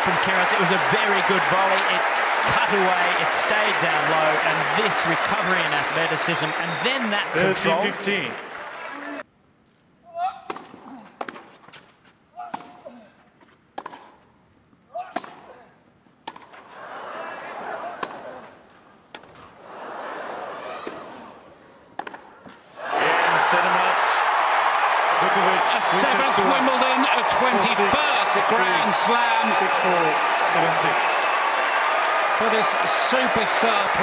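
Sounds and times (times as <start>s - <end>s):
crowd cheering and applause: 0.0s - 9.2s, 22.8s - 34.0s
tennis ball struck by rackets: 13.8s - 14.1s, 16.2s - 16.5s, 22.0s - 22.6s.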